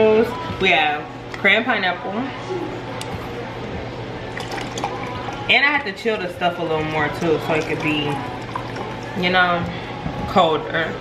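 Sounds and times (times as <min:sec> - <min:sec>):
juice pouring into a glass: 0:04.3 - 0:09.4.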